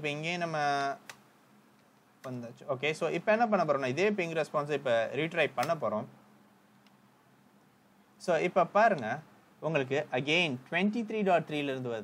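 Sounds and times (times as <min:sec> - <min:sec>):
man speaking: 0:00.0 - 0:01.1, 0:02.2 - 0:06.2, 0:08.2 - 0:12.0.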